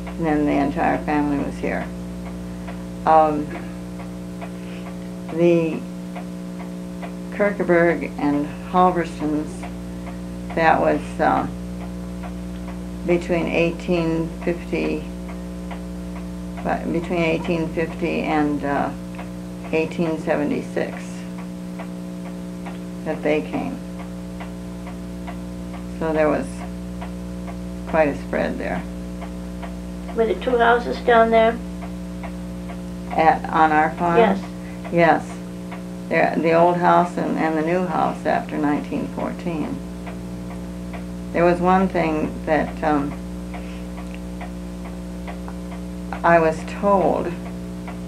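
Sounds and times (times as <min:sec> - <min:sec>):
clock ticking: 0:00.0 - 0:48.0
electrical hum: 0:00.0 - 0:48.0.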